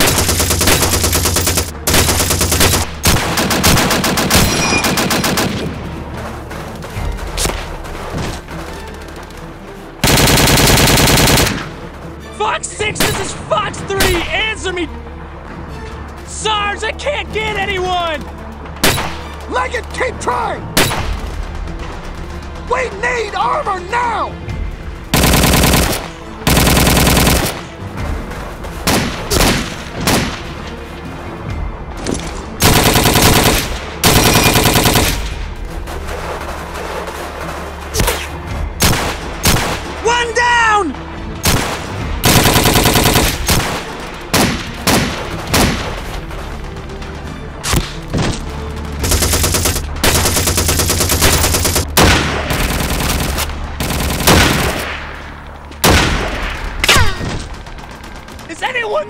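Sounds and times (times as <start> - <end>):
automatic gunfire bursts: 0.0 - 5.7, 10.0 - 11.7, 25.2 - 27.6, 32.6 - 35.3, 41.4 - 45.8, 49.0 - 54.8.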